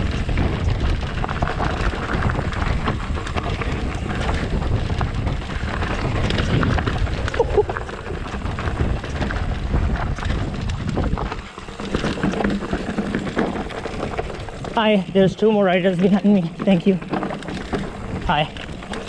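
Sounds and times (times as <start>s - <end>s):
bike rattling: 0.0s - 19.0s
tyres crunching over stones: 0.0s - 19.0s
wind over microphone: 0.0s - 19.0s.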